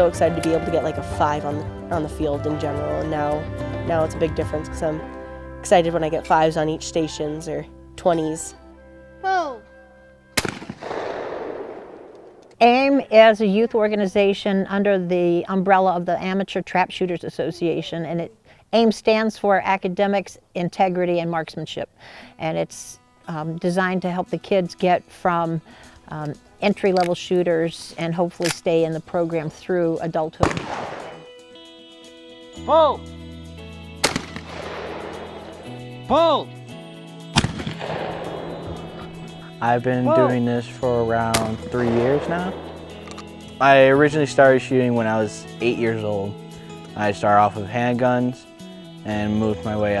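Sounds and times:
shotgun shot: 10.4 - 12.4, 30.4 - 31.3, 34.0 - 35.5, 37.3 - 39.0, 41.3 - 42.7
gunshot echo: 10.4 - 12.5, 30.4 - 31.3, 34.0 - 35.6, 37.3 - 39.2, 41.3 - 43.2.

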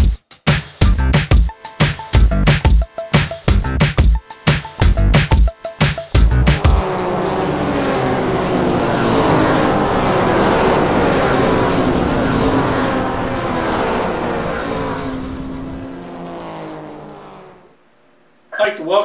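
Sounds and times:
race car engines: 4.3 - 18.5.

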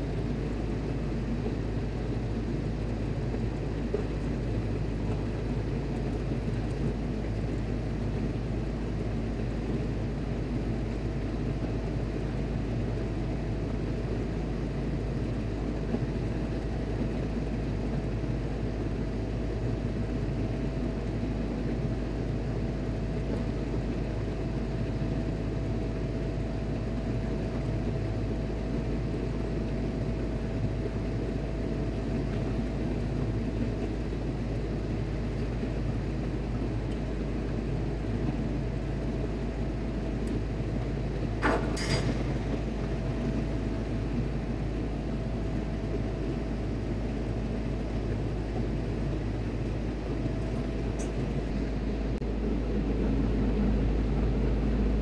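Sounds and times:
faint steady whine: 0.0 - 55.0
ship machinery humming: 0.0 - 55.0.

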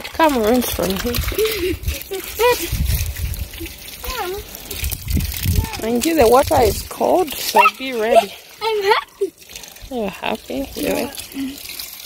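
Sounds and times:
water splashing from garden hose: 0.0 - 12.0.

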